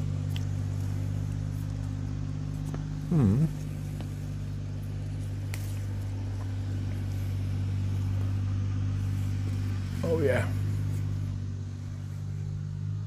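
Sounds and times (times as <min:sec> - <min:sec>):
low machine hum: 0:00.0 - 0:13.0.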